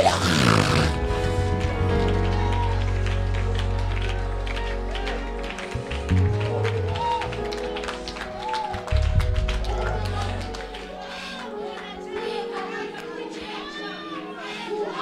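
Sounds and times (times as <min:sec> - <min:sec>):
deep held bass notes: 0:00.0 - 0:10.9
church band music: 0:00.8 - 0:11.7
congregation voice glides: 0:09.7 - 0:15.0.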